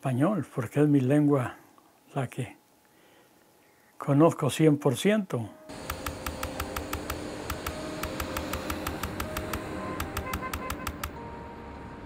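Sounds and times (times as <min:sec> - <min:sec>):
soft music pad: 0:04.4 - 0:12.0
typewriter keystroke clicks: 0:05.8 - 0:11.2.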